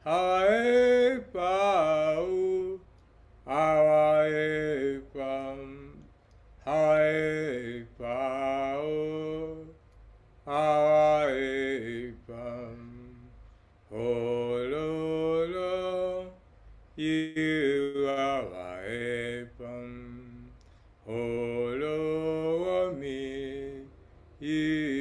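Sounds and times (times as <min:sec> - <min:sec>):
man singing chant-like song: 0:00.0 - 0:09.8, 0:10.4 - 0:25.0.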